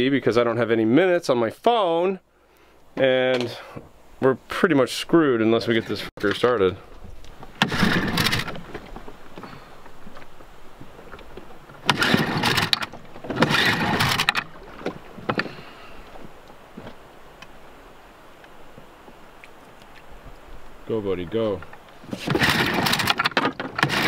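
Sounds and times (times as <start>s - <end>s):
outboard engine turning over: 7.3s - 16.4s, 21.7s - 24.0s
starter cord pulls: 7.4s - 10.3s, 11.1s - 15.6s, 21.5s - 24.0s.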